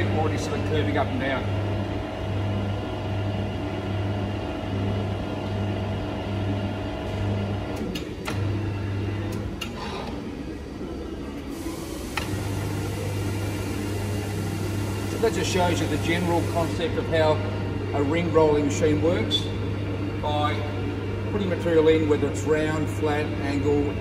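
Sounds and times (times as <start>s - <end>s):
electric motor humming: 11.8s - 24.0s.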